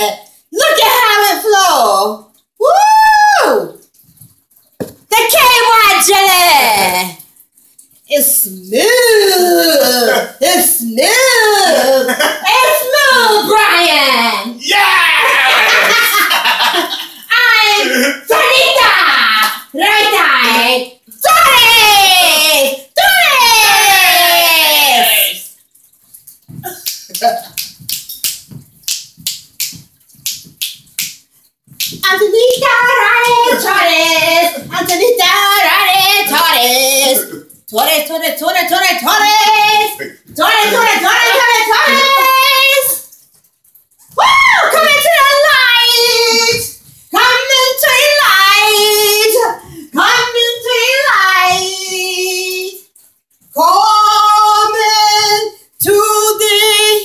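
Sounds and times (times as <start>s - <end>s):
hand claps: 26.6s - 32.0s
high voice singing unaccompanied: 32.0s - 43.1s, 44.2s - 52.9s, 53.6s - 57.0s.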